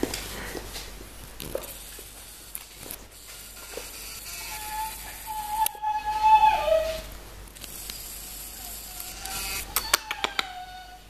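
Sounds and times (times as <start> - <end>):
puppy whining: 4.4 - 7.2, 8.5 - 11.0.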